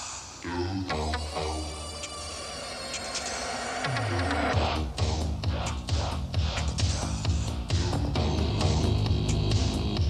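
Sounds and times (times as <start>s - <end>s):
soundtrack music: 0.9s - 10.0s.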